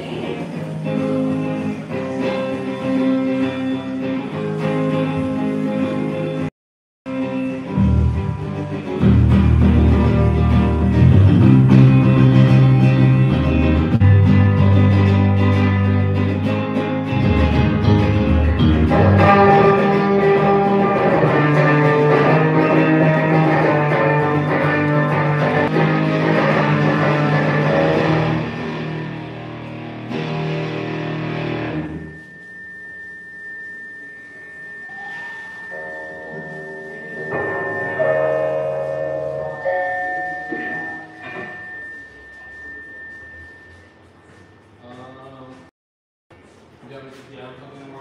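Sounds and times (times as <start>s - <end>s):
live band with guitar: 0.0s - 6.5s, 7.1s - 32.5s, 34.5s - 39.7s
scattered quiet notes: 26.6s - 45.6s
thin steady high tone: 31.8s - 45.0s.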